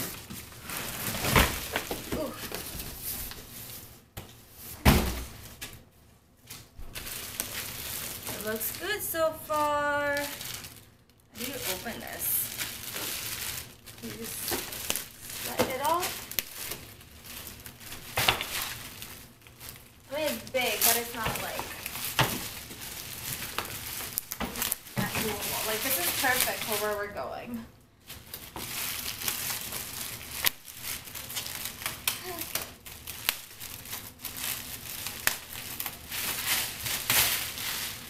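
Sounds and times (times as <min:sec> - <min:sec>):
plastic wrapping crinkling: 0:00.0 - 0:38.0.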